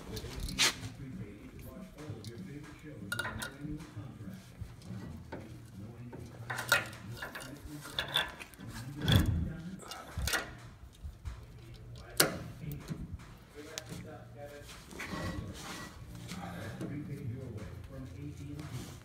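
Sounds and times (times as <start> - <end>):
sharp knocks and clicks on metal hub: 4.9 - 13.4.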